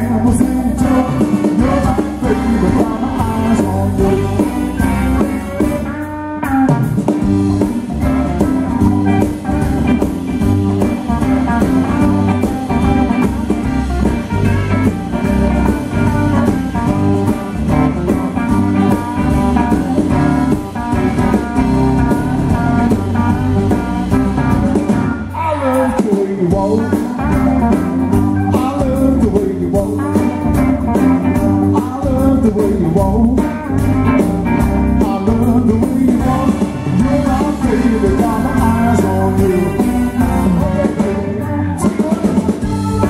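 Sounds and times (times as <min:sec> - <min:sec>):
drum kit beat: 0:00.0 - 0:43.0
electric guitars: 0:00.0 - 0:43.0.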